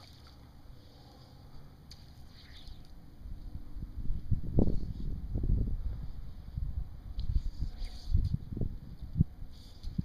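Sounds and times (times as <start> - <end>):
fish splashing in water: 0.0 - 0.6
low steady rumble: 0.0 - 10.0.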